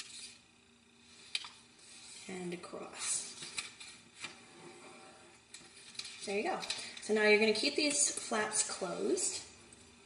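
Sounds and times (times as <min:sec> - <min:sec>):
soft paper brushing stroke: 0:01.0 - 0:06.3.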